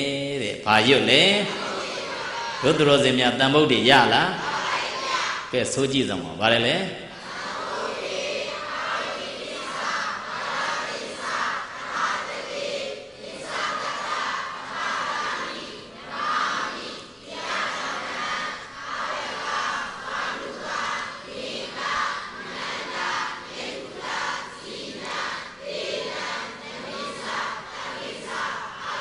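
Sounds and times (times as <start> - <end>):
congregation reciting in unison: 0.0 - 29.0.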